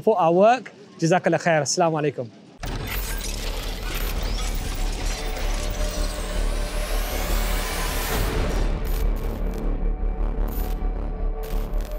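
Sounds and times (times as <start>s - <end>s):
mechanical clicking and whirring: 2.6s - 9.6s.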